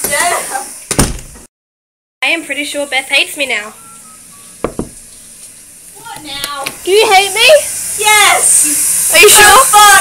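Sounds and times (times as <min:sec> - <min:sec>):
shower water running: 0:00.0 - 0:00.9, 0:04.7 - 0:10.0
knocks on a door: 0:04.6 - 0:05.0.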